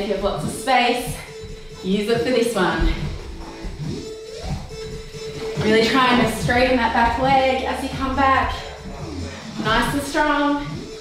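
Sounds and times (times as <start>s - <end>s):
instrumental music with sliding pitches: 0.0s - 11.0s.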